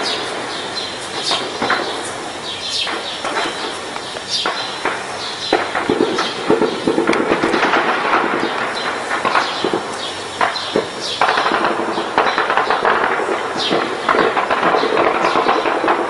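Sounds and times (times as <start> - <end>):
heavy gunfire: 0.0 - 16.0.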